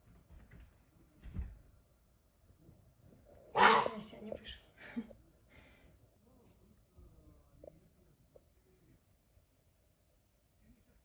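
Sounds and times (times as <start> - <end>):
puma harsh call: 3.5 - 4.0.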